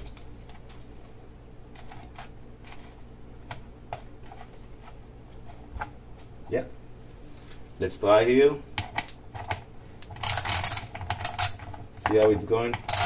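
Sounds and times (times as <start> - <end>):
steady low hum: 0.0 - 13.0
small clicks and scrapes: 1.7 - 5.9.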